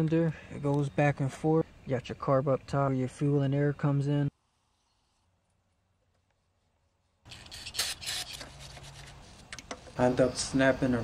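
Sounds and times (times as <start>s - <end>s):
metal parts scraping: 7.3s - 9.1s.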